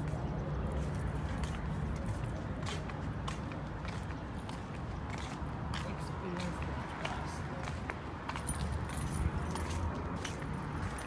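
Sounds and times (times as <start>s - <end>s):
clicks and jingles of walking: 0.0s - 11.0s.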